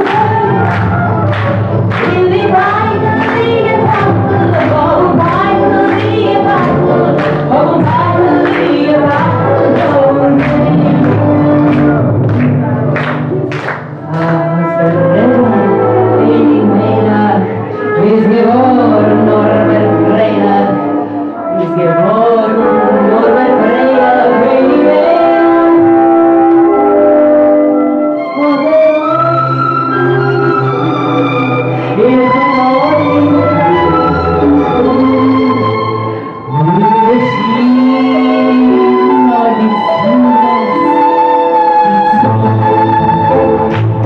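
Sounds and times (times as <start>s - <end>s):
woman singing into a microphone: 0.0s - 1.3s, 1.9s - 13.2s, 14.0s - 26.8s, 28.2s - 43.4s
audience clapping along: 0.0s - 15.1s, 43.3s - 44.0s
klezmer band playing: 0.0s - 44.0s
loud music: 0.0s - 44.0s.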